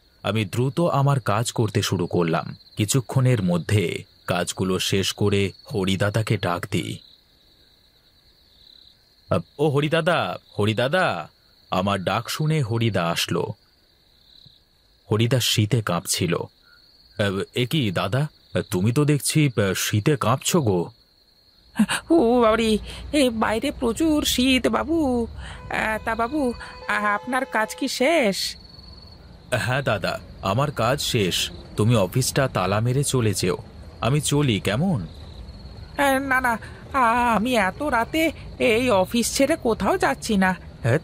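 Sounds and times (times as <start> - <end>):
crickets chirring: 0.0 - 41.0
man speaking: 17.2 - 20.9, 29.5 - 35.1
steady high tone: 24.3 - 28.6.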